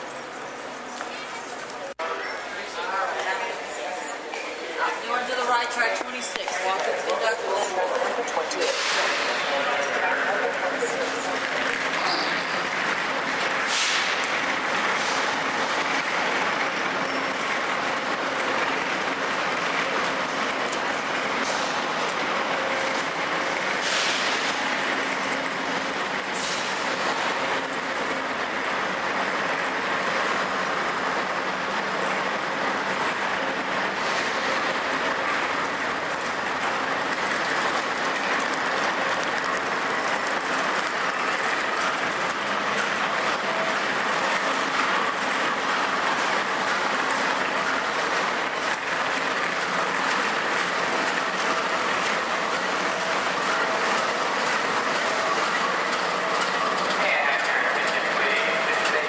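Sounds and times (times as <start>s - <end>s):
diesel locomotives idling: 1.5s - 59.0s.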